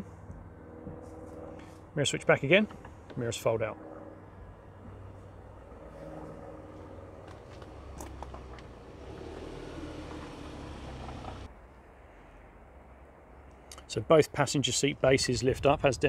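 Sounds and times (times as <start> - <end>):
van engine idling: 4.9 - 11.5.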